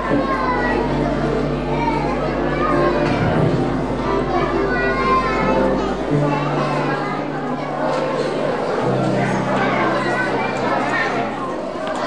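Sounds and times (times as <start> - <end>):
children chattering: 0.0 - 12.0
music: 0.0 - 12.0.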